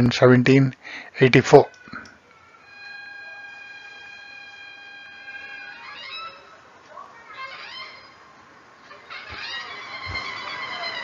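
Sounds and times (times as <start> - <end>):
high whistling tone: 2.5 - 6.6.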